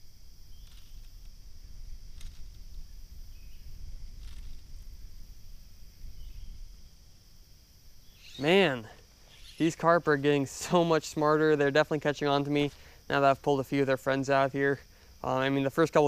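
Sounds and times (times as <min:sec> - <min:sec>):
high-pitched insect drone: 0:00.0 - 0:16.0
faint ticks: 0:02.1 - 0:02.8, 0:04.2 - 0:04.9.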